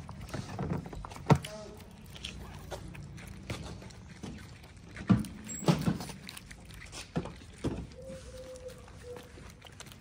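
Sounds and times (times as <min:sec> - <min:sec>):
cats chewing and lip-smacking: 0:00.0 - 0:10.0.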